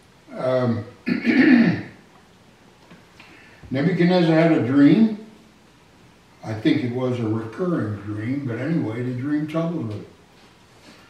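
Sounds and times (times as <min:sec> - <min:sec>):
man clearing his throat: 0:00.6 - 0:02.0.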